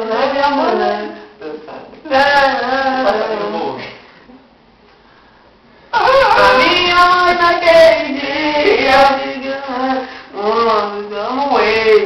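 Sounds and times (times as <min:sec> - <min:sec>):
high-pitched singing voice: 0:00.0 - 0:01.3, 0:06.0 - 0:12.0.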